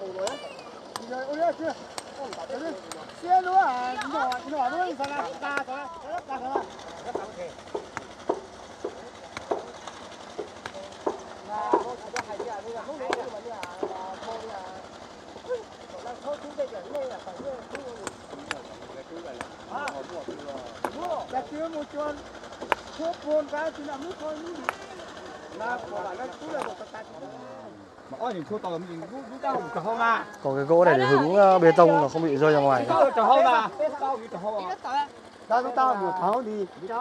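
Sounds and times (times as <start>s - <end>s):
hammers striking rock: 1.8s - 3.2s, 3.9s - 14.4s, 16.4s - 25.1s.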